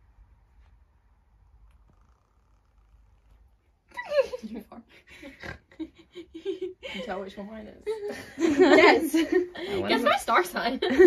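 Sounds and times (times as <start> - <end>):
person laughing: 3.9 - 7.2.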